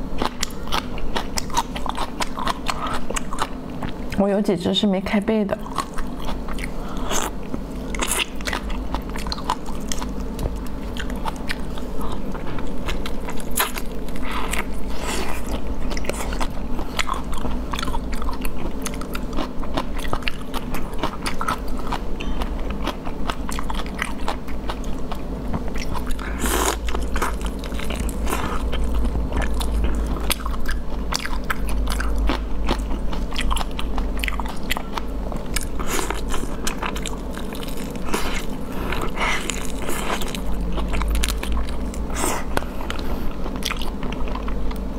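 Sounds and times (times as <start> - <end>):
biting and chewing: 0.0 - 4.2, 5.6 - 44.9.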